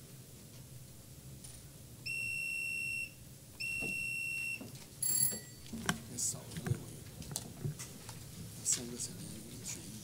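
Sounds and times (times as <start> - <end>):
long high-pitched beeps: 2.0 - 5.5.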